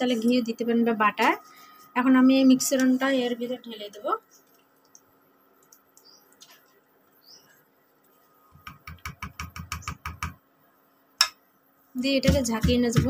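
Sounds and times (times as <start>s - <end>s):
steel kitchenware tapping: 8.6s - 10.4s.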